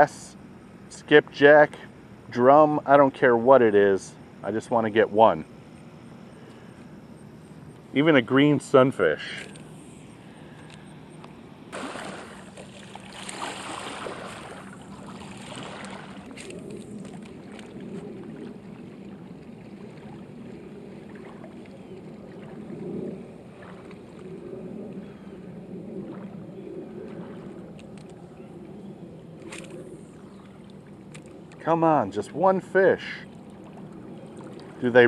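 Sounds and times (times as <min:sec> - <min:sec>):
light wind: 0:00.0 - 0:35.0
small waves lapping at shore: 0:11.7 - 0:35.0.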